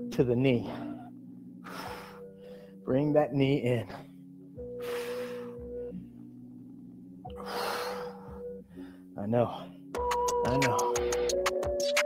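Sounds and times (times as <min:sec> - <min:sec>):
faint background music: 0:00.0 - 0:12.0
man breathing heavily: 0:00.6 - 0:02.9, 0:03.8 - 0:06.3, 0:07.3 - 0:09.9.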